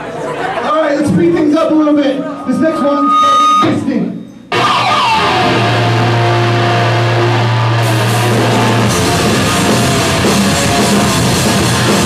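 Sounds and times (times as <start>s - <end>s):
high-end noise: 1.4s - 12.0s
electric guitars holding low chord: 4.5s - 12.0s.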